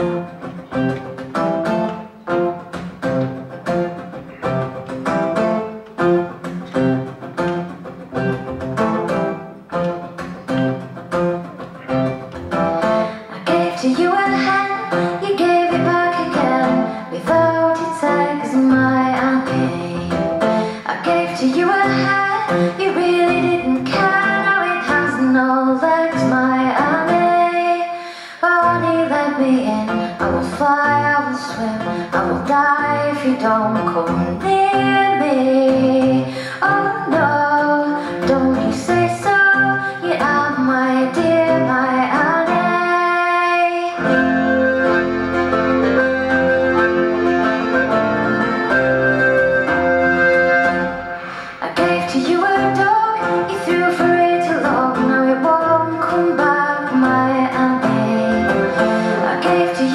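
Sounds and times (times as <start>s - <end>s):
plucked string instrument: 0.0s - 27.9s, 28.6s - 59.9s
acoustic guitar: 0.0s - 59.9s
woman singing: 13.0s - 44.3s, 51.4s - 59.9s
button accordion: 43.9s - 51.6s, 58.3s - 59.8s
double bass: 44.0s - 51.2s.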